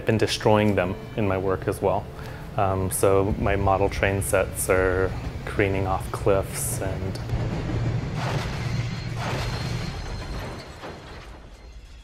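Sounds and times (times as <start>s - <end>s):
crashing noise: 7.3s - 12.0s.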